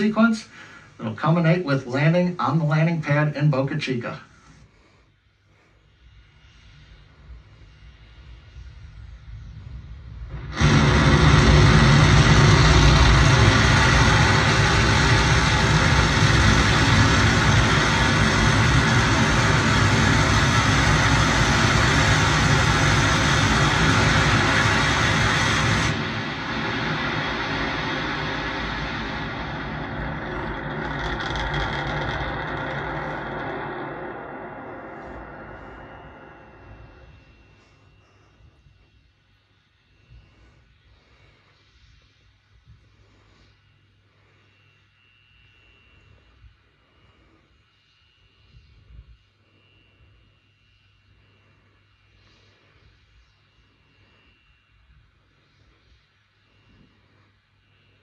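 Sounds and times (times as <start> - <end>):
distorted rocket engines firing: 0.0 - 4.0, 6.8 - 38.6.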